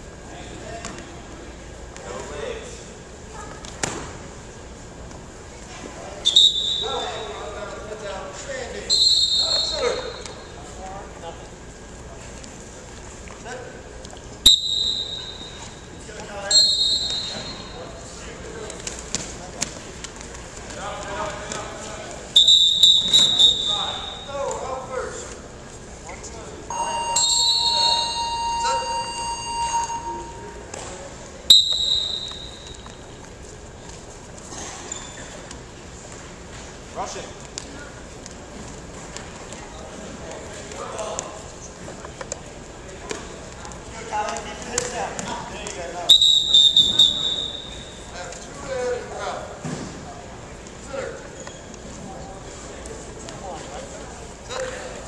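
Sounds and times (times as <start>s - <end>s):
referee's whistle blasts: 6.2s - 7.3s, 8.9s - 10.3s, 14.5s - 15.6s, 16.4s - 17.8s, 22.4s - 24.3s, 26.7s - 30.7s, 31.5s - 32.8s, 46.1s - 48.1s.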